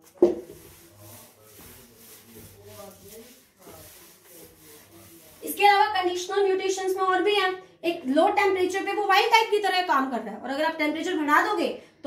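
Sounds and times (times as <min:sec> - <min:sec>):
duster rubbing on chalkboard: 0:00.0 - 0:06.6.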